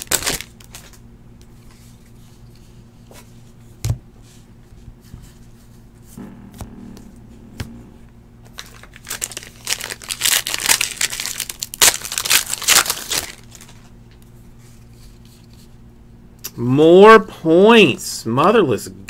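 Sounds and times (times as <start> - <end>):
foil wrapper tearing and crinkling: 0.0 - 1.0, 8.5 - 13.9.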